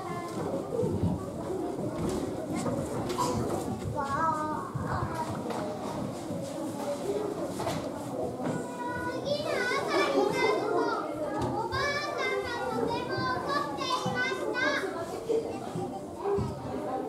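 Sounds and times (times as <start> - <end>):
murmur of children: 0.0 - 17.0.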